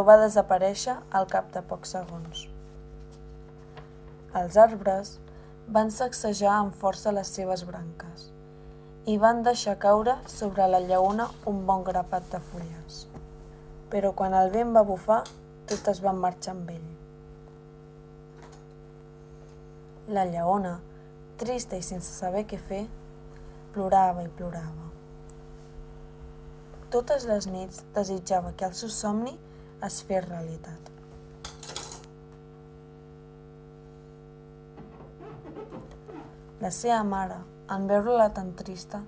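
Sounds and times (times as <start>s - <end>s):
low electrical hum: 0.0s - 39.0s.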